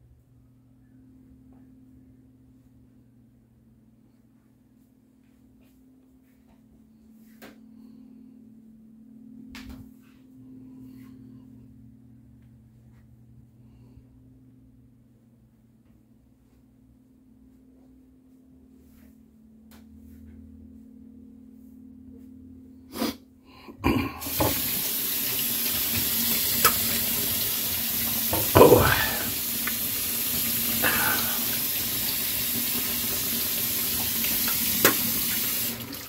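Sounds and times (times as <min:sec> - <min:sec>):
water running into sink: 0:23.9 - 0:36.0
kitchen tap turned on: 0:24.2 - 0:30.6, 0:31.5 - 0:36.0.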